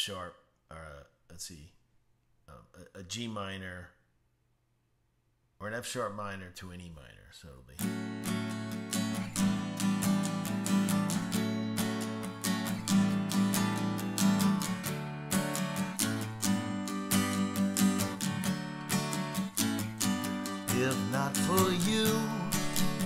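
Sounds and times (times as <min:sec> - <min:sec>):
acoustic guitar strumming: 0:07.8 - 0:23.0
man singing: 0:20.6 - 0:23.0.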